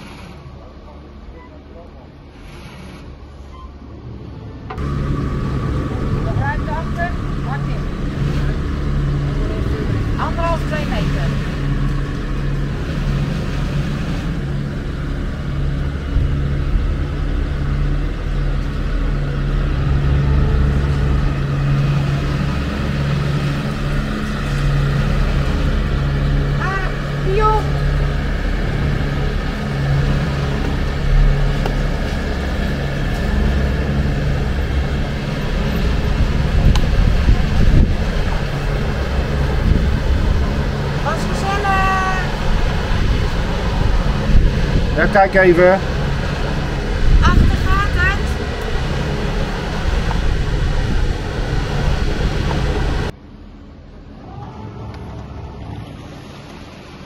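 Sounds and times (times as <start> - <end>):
boat engine running low speed: 0.0 - 57.0.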